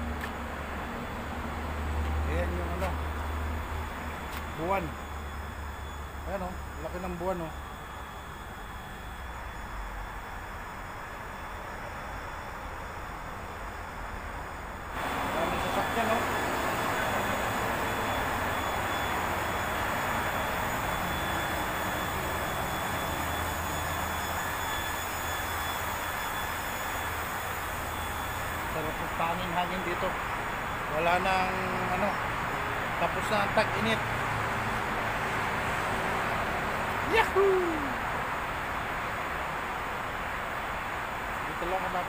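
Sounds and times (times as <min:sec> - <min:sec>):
highway traffic hiss: 0:00.0 - 0:42.0.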